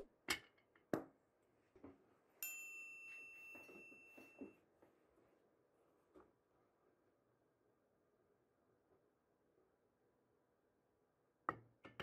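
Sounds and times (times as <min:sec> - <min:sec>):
bell-like chime: 0:02.4 - 0:04.6.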